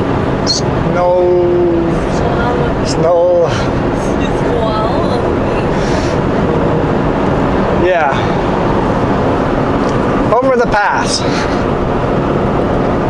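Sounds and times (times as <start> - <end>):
truck engine drone: 0.0 - 13.0.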